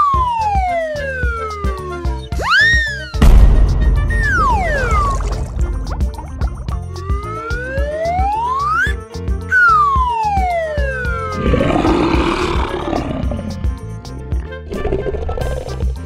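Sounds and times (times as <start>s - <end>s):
cartoon music with beat: 0.0s - 16.0s
tiger roaring: 11.4s - 13.8s.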